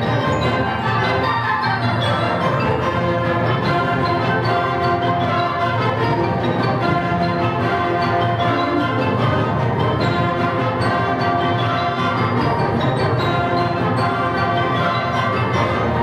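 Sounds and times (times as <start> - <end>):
concert band playing a reel: 0.0 - 16.0.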